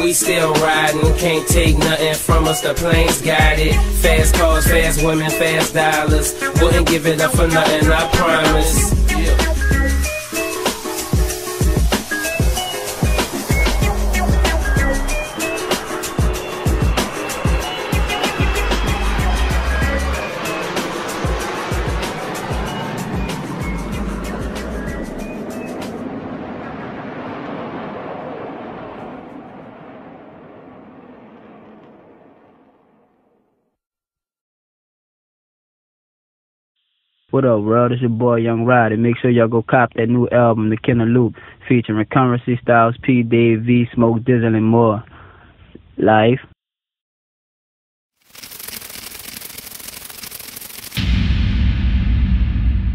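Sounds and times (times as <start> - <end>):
instrumental hip-hop beat: 0.0 - 22.6
bass-heavy hit: 8.6 - 10.0, 13.5 - 15.4, 18.4 - 20.3, 21.3 - 25.4, 51.0 - 52.9
crackling glitch noise: 48.2 - 51.4.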